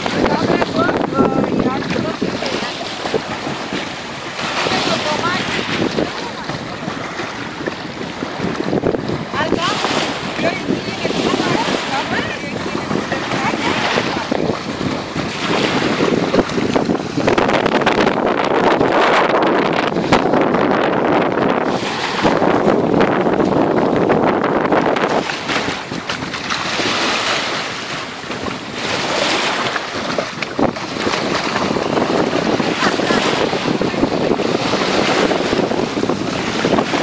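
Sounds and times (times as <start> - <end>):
small waves washing onto shore: 0.0 - 37.0
wind buffeting microphone: 0.0 - 37.0.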